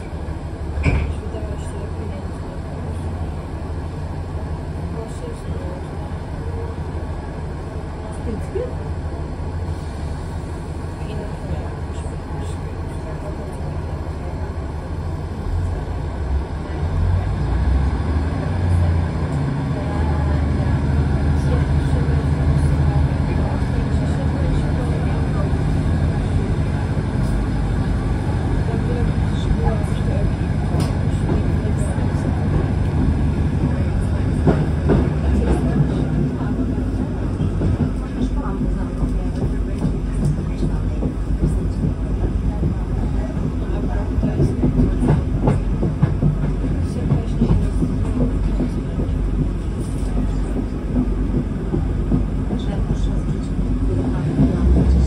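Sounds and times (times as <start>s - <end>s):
train engine drone: 0.0s - 55.0s.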